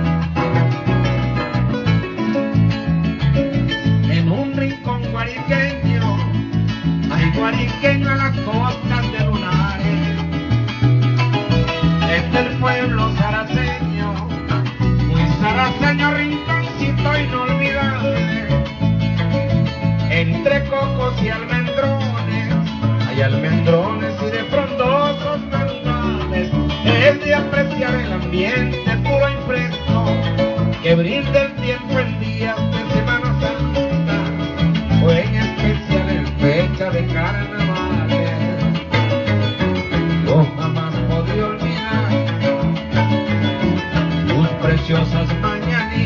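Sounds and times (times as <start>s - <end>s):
harp and cuatro folk music: 0.0s - 46.0s.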